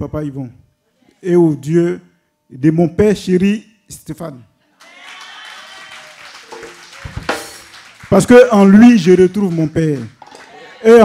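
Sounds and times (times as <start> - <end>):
congregation applauding: 4.8 - 11.0.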